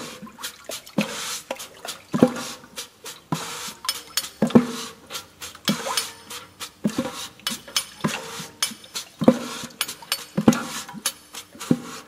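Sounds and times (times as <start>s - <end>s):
hand rattles hissing: 0.0s - 12.0s.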